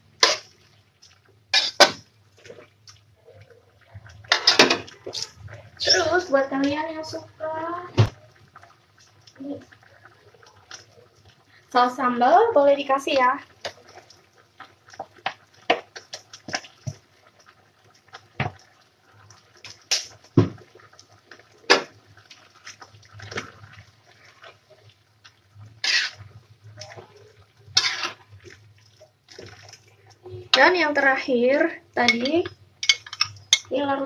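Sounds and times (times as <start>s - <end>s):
spatula scraping a wok: 0.2s - 0.5s, 1.5s - 2.0s, 25.7s - 26.4s, 27.7s - 28.4s.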